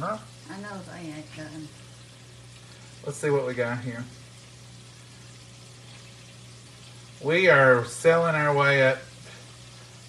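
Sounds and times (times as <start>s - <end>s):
low steady hum: 0.0s - 10.0s
meat sizzling in a pan: 0.0s - 10.0s.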